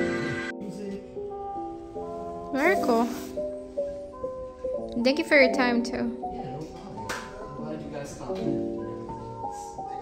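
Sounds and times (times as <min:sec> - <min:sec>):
slow soft melody: 0:00.0 - 0:10.0.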